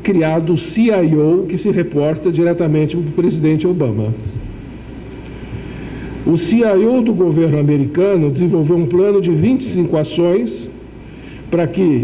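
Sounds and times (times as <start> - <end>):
man talking: 0.0 - 4.3, 6.2 - 10.8, 11.5 - 12.0
low room noise rumble: 0.0 - 12.0.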